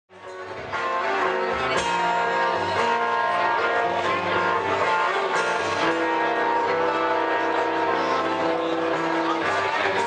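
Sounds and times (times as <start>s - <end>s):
acoustic band playing: 0.1s - 10.0s
guitar chords: 0.1s - 10.0s.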